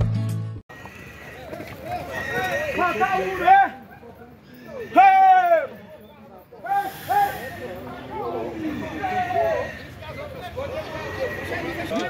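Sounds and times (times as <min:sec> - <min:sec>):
people shouting over each other: 0:04.8 - 0:05.8.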